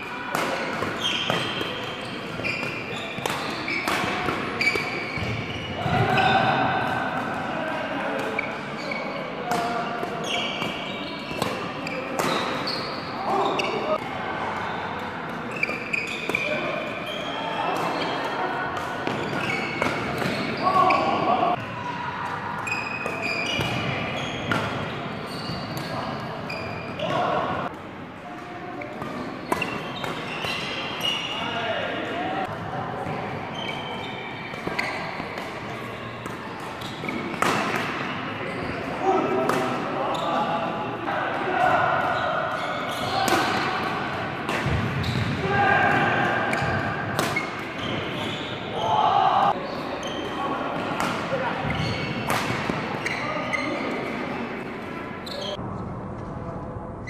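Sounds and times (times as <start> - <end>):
players' voices and calls: 0.0 - 55.6
racket striking shuttlecock: 46.5 - 47.7.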